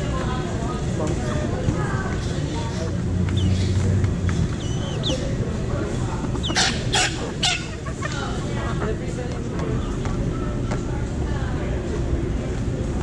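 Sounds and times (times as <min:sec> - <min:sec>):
chickens clucking: 0:01.5 - 0:10.8
loud chicken calls: 0:06.4 - 0:08.4.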